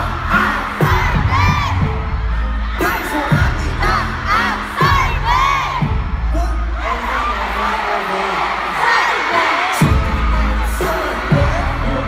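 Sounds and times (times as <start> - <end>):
amplified concert music with bass: 0.0 - 12.0
crowd screaming and cheering: 0.0 - 12.0.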